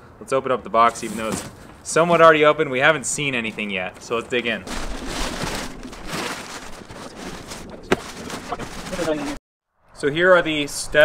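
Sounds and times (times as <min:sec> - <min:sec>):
cardboard boxes rustling and scraping: 0:00.9 - 0:09.4.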